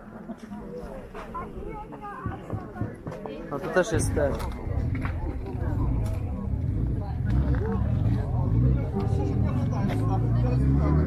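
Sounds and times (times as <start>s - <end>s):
people talking: 0.0s - 11.0s
steady low rumble: 3.8s - 10.4s.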